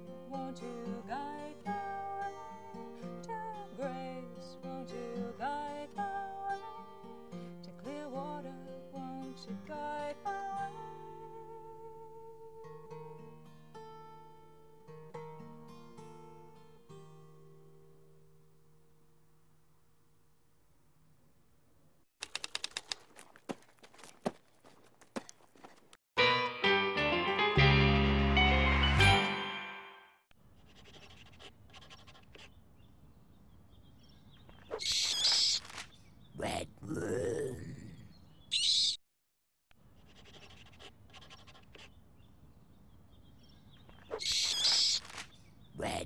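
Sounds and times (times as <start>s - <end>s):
typewriter keys clacking: 22.2s - 23.4s.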